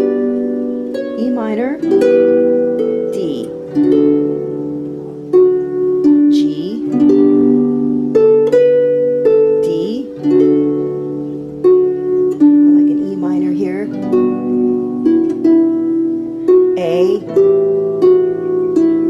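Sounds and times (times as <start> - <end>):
harp chords: 0.0 - 19.0
girl's voice: 3.1 - 3.6, 6.3 - 7.0, 9.6 - 10.2, 12.8 - 14.0, 16.8 - 17.4.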